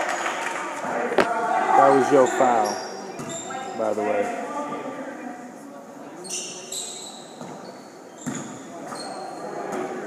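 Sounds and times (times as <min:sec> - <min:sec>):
murmur of spectators: 0:00.0 - 0:10.0
sneakers squeaking on hardwood: 0:02.0 - 0:03.8, 0:06.2 - 0:09.9.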